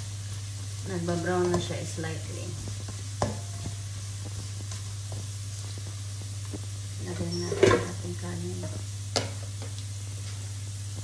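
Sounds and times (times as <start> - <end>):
garlic sizzling in oil: 0.0 - 11.0
steady low hum: 0.0 - 11.0.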